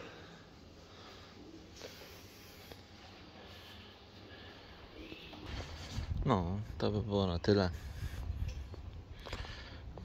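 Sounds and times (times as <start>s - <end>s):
soft rustle: 0.0s - 6.8s
footsteps on paved path: 7.6s - 10.0s.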